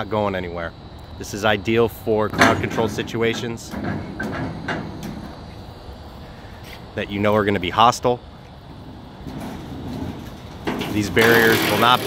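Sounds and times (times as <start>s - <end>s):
low steady rumble: 0.0s - 11.5s.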